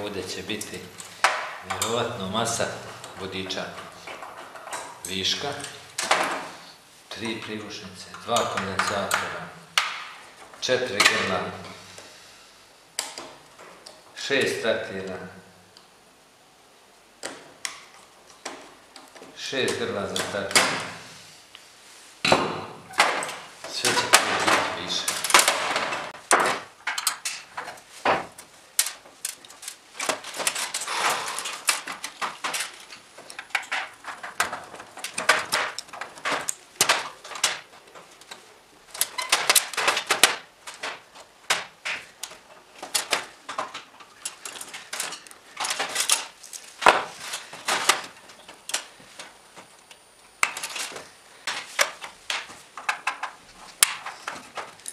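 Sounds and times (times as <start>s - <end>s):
metallic clicks and clatter: 23.0s - 30.9s.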